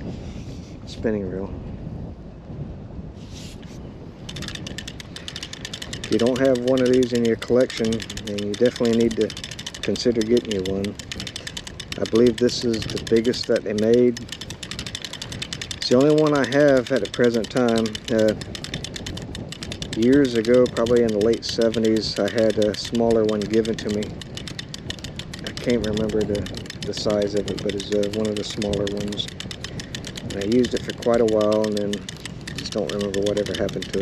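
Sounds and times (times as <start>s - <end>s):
wind on microphone: 0.0s - 34.0s
fishing reel ratchet clicking: 4.2s - 34.0s.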